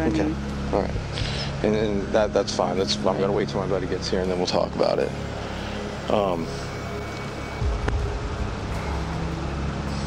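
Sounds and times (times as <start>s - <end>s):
faint music: 0.0s - 10.0s
vehicle rumble: 0.0s - 10.0s.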